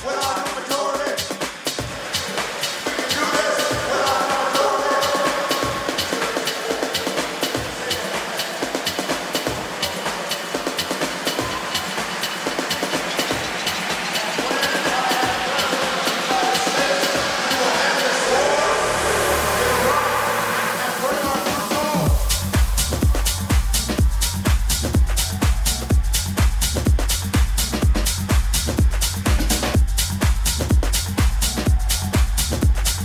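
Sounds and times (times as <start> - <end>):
electronic dance music: 0.0 - 33.0
rising hiss sweep: 14.1 - 24.0
deep bass: 18.2 - 33.0.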